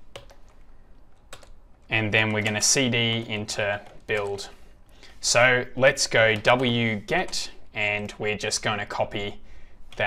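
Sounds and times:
computer keyboard keystrokes: 0.0s - 4.5s.

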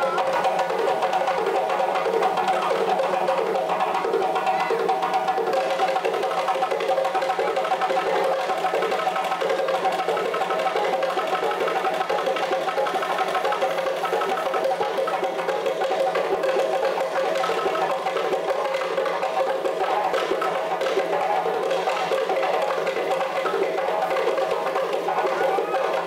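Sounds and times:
drum ensemble playing fast rhythm: 0.0s - 26.0s.

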